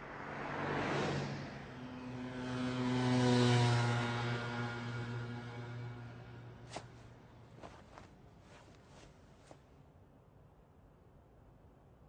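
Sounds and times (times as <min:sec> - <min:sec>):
mechanical vehicle drone: 0:00.0 - 0:06.7.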